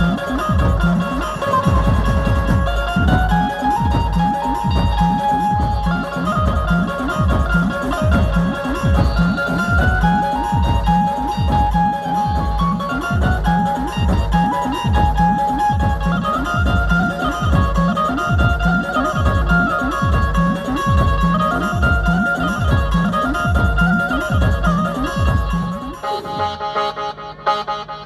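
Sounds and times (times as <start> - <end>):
electronic drum beat: 0.0 - 26.7
banjo melody: 0.0 - 28.0.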